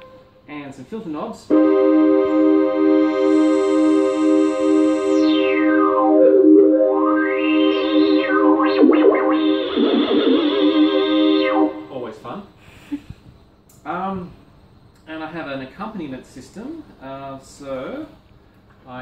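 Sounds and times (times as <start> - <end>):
synthesizer note with filter sweeps: 1.5 - 12.2.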